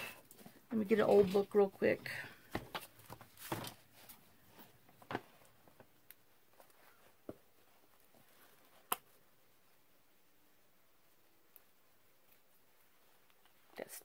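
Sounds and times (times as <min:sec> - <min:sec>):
book set down and opened: 0:02.5 - 0:03.8
pages handled: 0:02.5 - 0:05.8.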